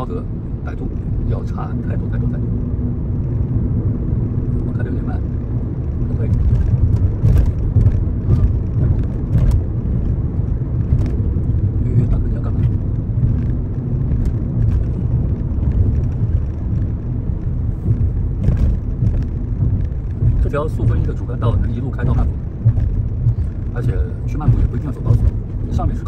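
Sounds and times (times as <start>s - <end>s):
car road and engine rumble: 0.0s - 26.0s.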